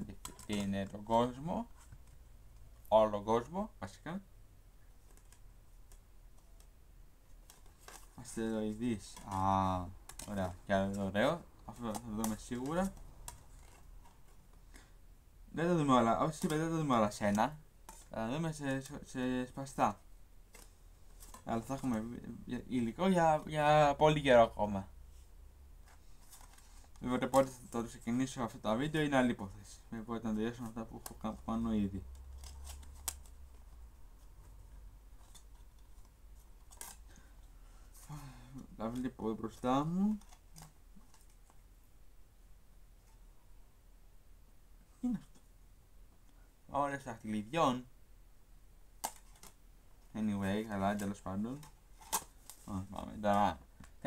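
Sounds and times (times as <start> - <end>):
low room hum: 0.0 - 54.0
plastic cases clicking and rustling: 0.1 - 0.8, 7.4 - 11.0, 49.0 - 49.6.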